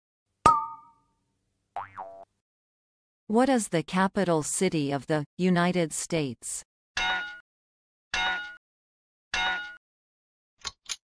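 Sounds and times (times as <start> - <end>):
cartoon boing sound effect: 0.5 - 1.0, 1.8 - 2.3.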